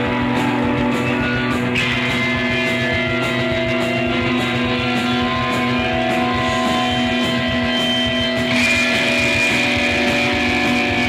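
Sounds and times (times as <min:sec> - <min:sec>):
distorted electric guitar drone: 0:00.0 - 0:11.0
high sustained tone: 0:01.1 - 0:11.0.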